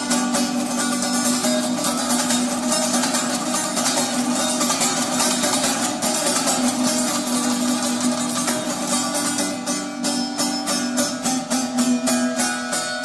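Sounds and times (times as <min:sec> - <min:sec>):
traditional string instrument music: 0:00.0 - 0:13.0.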